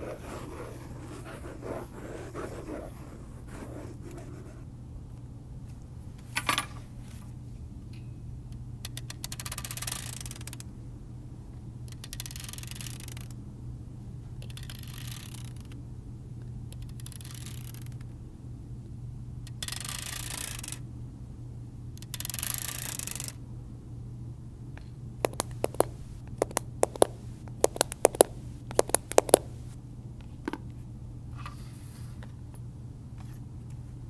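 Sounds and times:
pen scraping on notebook: 0.0 - 4.7, 25.3 - 27.1
electrical hum: 0.0 - 19.7, 23.3 - 31.4.

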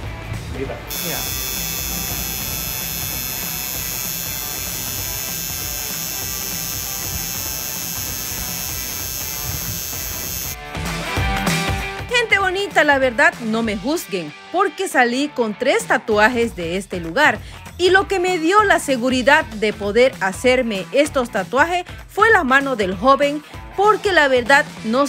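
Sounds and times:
tattoo machine buzzing: 0.9 - 10.6.

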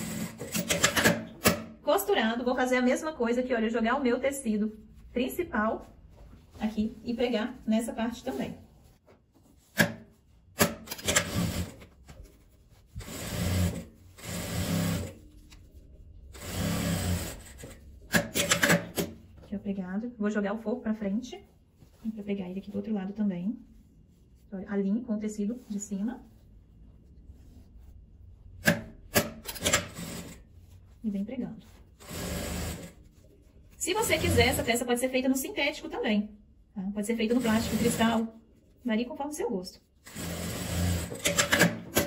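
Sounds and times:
sewing machine stitching: 0.0 - 1.8, 10.6 - 11.8, 13.0 - 15.2, 16.3 - 19.2, 28.7 - 30.4, 32.0 - 33.0, 33.9 - 34.8, 37.2 - 38.2, 40.0 - 42.0
cloth rubbing: 4.4 - 10.5, 11.4 - 17.9, 21.0 - 28.5, 30.0 - 34.8.

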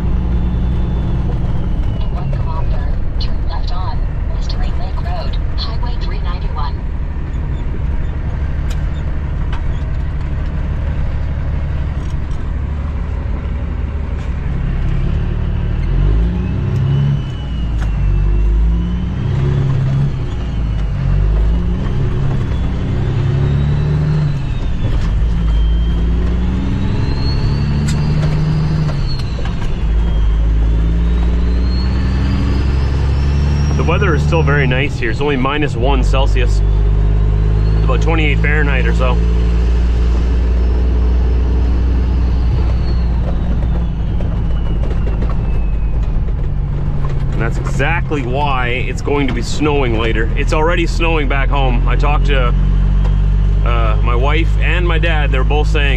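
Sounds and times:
truck diesel engine shifting gears: 0.0 - 55.9.

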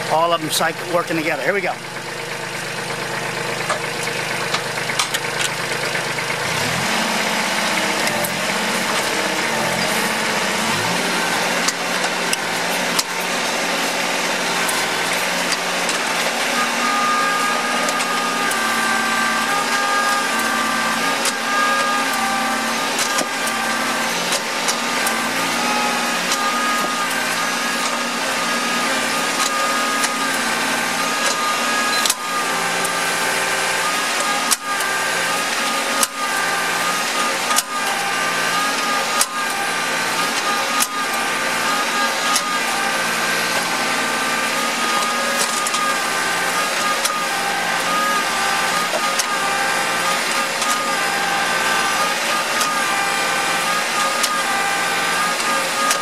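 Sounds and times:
hydraulic whine: 0.0 - 56.0
tractor diesel engine running: 0.0 - 56.0.

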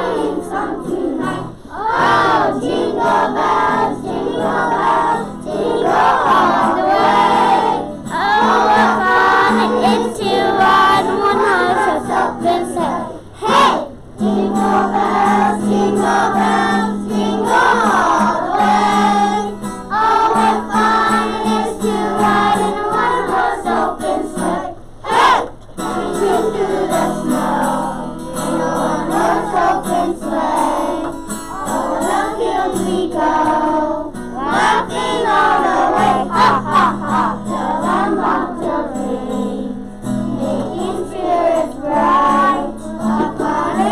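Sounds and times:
children singing in unison: 0.0 - 43.9
strummed acoustic guitar: 0.0 - 43.9
instrumental backing music: 25.2 - 43.9.

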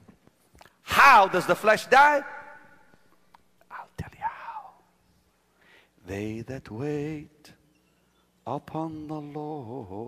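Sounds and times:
man whispering: 3.6 - 4.8.

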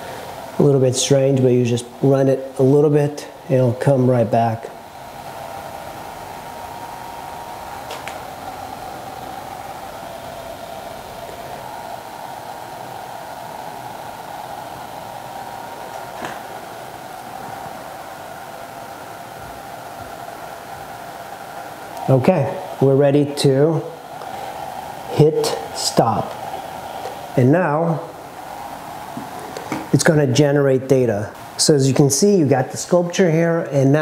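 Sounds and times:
cooling fan whirring: 0.0 - 34.0.

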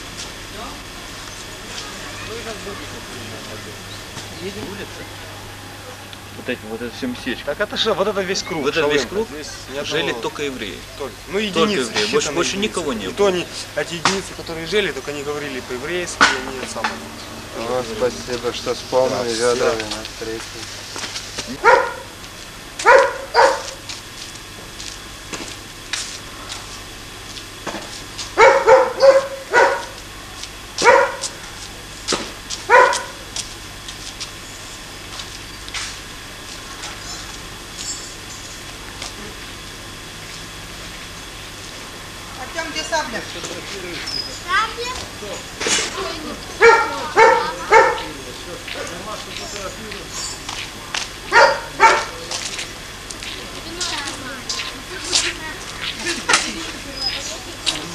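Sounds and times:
people talking: 0.5 - 20.8, 42.4 - 50.3, 51.3 - 57.9
dog barking: 21.5 - 22.1, 22.8 - 23.8, 28.4 - 30.0, 30.8 - 31.4, 32.7 - 33.2, 46.6 - 48.2, 51.3 - 52.2.

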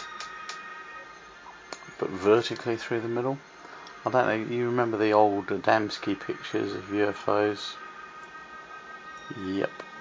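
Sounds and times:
faint steady high hum: 0.0 - 10.0.

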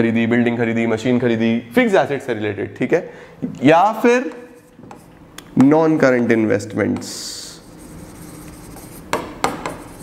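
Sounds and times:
marker scratching on board: 4.3 - 5.1, 7.0 - 10.0
marker hissing on board: 7.0 - 10.0.

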